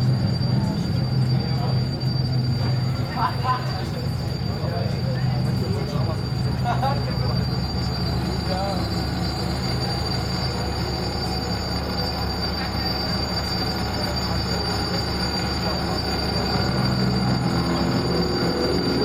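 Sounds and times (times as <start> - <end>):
dark electronic drone music: 0.0 - 19.0.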